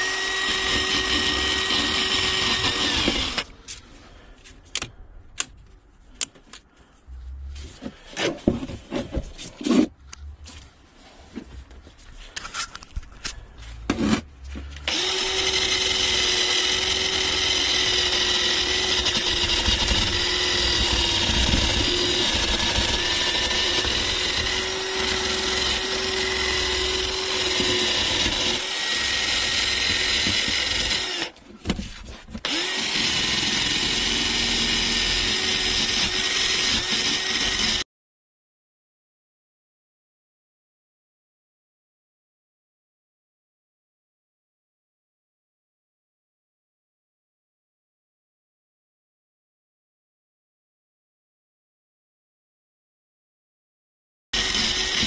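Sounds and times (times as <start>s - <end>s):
drill scrubbing rust off metal: 0.0s - 3.5s, 14.8s - 31.4s, 32.4s - 37.8s, 54.4s - 55.0s.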